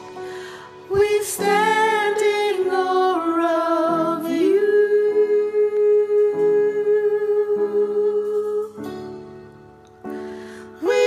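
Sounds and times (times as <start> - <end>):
two women singing a duet: 0.8 - 9.2, 10.8 - 11.0.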